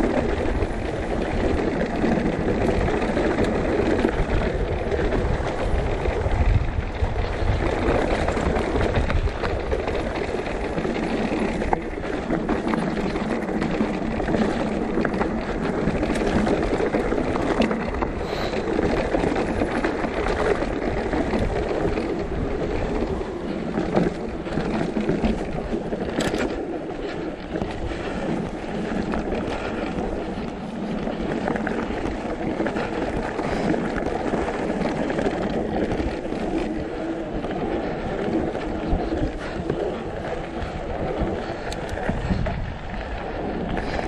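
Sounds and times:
bike tyres on rocky gravel: 0.0s - 44.0s
rattle of stones and bike parts: 0.0s - 44.0s
wind on microphone: 0.0s - 44.0s.

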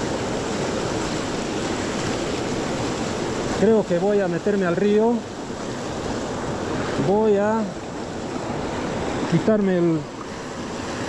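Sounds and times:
river rapids rushing: 0.0s - 11.0s.

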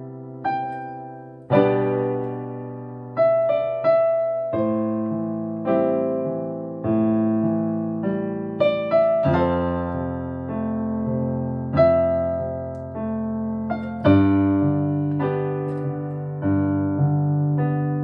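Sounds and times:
piano chords: 0.0s - 18.0s.

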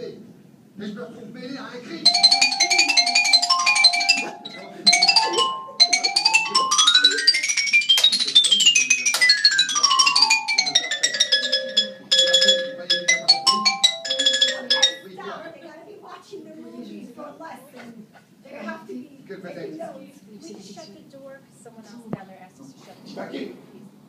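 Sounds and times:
xylophone played fast: 2.0s - 15.4s.

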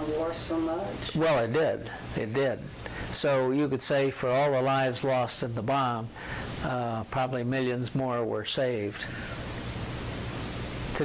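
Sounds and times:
steady static hiss: 0.0s - 11.0s.

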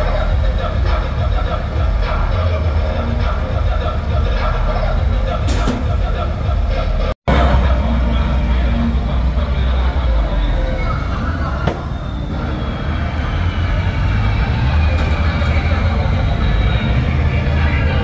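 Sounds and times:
engines rumbling: 0.0s - 18.0s
music: 0.0s - 18.0s
voices: 0.0s - 18.0s.

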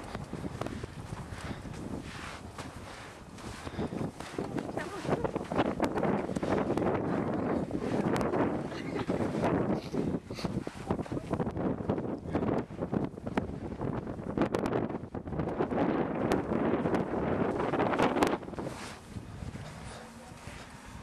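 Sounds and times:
strong wind buffeting microphone: 0.0s - 21.0s.

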